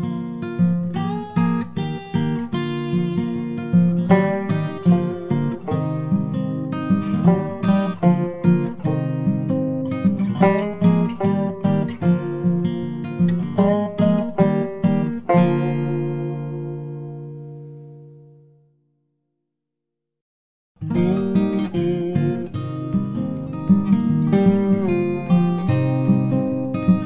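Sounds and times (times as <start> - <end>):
acoustic guitar playing: 0.0 - 19.0, 20.8 - 27.0.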